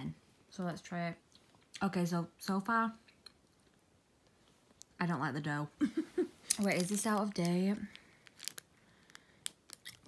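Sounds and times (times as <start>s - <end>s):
plastic wrapper crackling: 6.4s - 10.0s.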